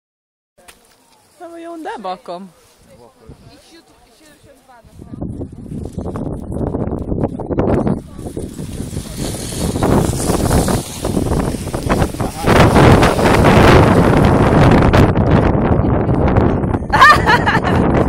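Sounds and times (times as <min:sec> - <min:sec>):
people talking: 0:00.6 - 0:05.8, 0:07.6 - 0:09.7, 0:12.0 - 0:13.6
wind buffeting microphone: 0:02.8 - 0:18.0.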